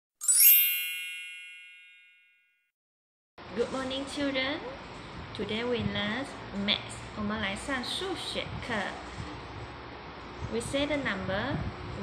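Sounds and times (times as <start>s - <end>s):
bright chime ding: 0.2s - 2.5s.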